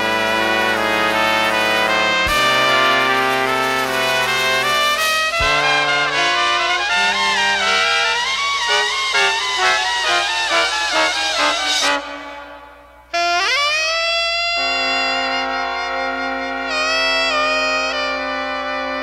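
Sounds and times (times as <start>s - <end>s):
jazz-rock horn section: 0.0s - 19.0s.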